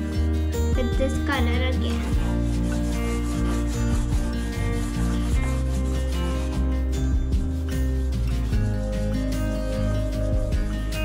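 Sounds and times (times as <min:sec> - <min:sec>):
background music: 0:00.0 - 0:11.0
pastel rubbing on paper: 0:00.8 - 0:11.0.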